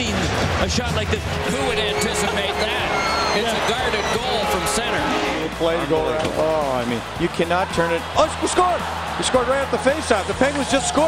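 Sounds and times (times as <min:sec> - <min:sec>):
commentators talking: 0:00.7 - 0:11.0.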